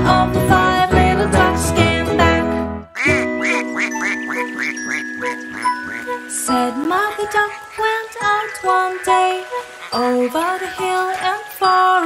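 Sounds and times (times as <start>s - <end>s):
held music chord: 0.9s - 10.2s
duck quacking: 3.0s - 6.2s, 7.1s - 11.2s.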